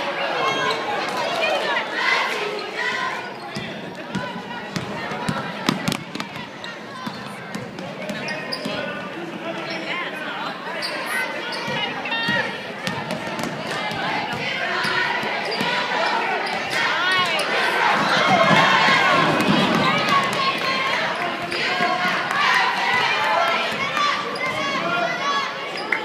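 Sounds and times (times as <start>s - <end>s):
people talking and calling out: 0.0s - 26.0s.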